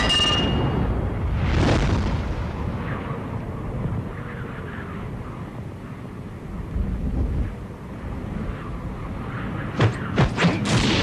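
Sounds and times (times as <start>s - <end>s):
wind-like rushing noise: 0.0s - 11.0s.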